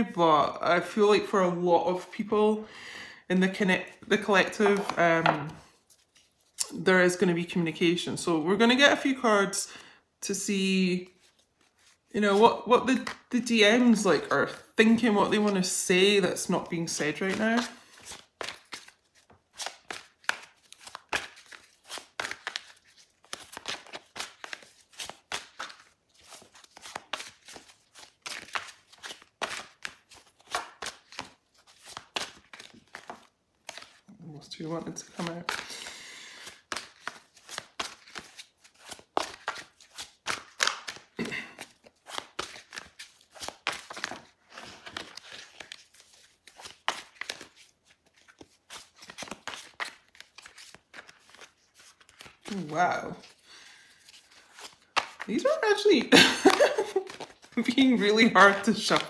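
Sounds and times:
cards being shuffled: 3.9 - 7.2, 11.1 - 59.0.

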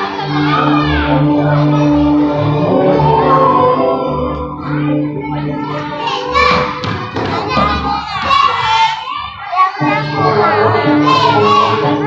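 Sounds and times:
young children's voices: 0.0 - 12.0.

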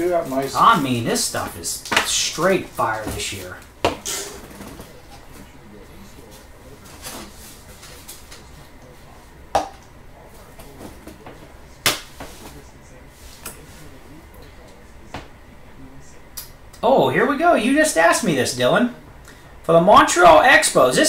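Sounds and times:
low steady background noise: 0.0 - 21.0.

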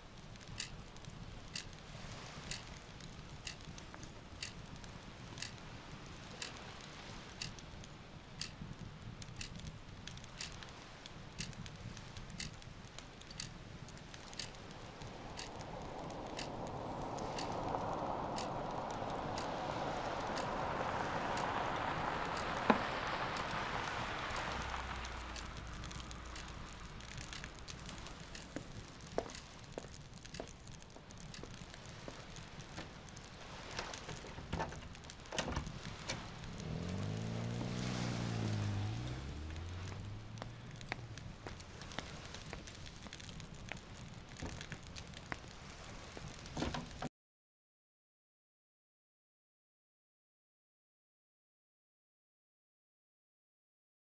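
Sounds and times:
soft ticking: 0.1 - 47.0.

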